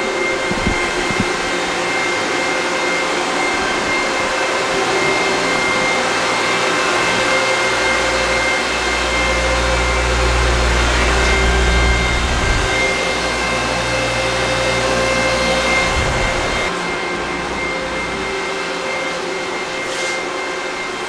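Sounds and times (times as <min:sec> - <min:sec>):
cooling fans whirring: 0:00.0 - 0:21.0
low rumble: 0:09.8 - 0:13.0.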